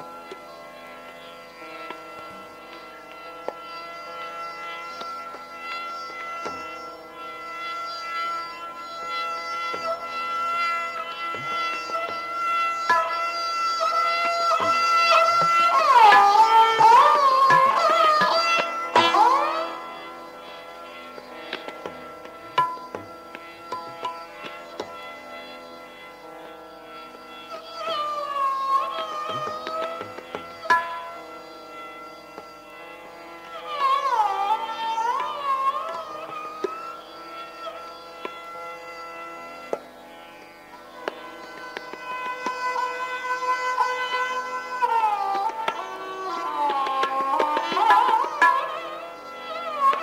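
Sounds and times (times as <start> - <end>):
bowed string high note: 0.0 - 50.0
sarangi playing softly: 0.0 - 50.0
sympathetic strings ringing: 0.0 - 50.0
soft plucked notes: 11.2 - 20.2, 21.0 - 25.3.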